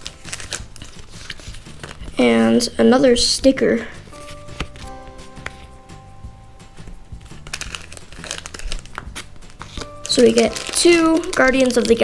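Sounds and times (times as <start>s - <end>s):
plastic packaging crinkling: 0.0s - 2.2s, 4.1s - 5.7s, 7.2s - 12.0s
quiet background music: 0.0s - 12.0s.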